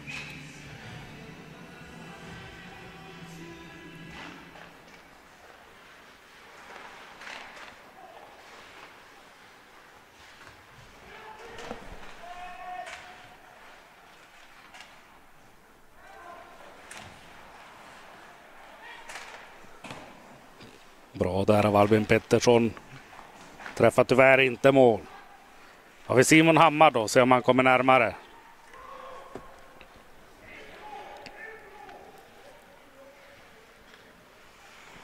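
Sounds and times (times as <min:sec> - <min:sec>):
hockey sticks and puck clacking: 0:04.1 - 0:20.9.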